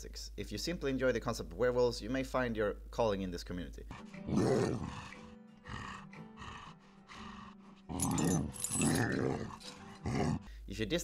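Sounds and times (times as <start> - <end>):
music: 3.5 - 11.0
cartoon werewolf growling: 3.9 - 10.5.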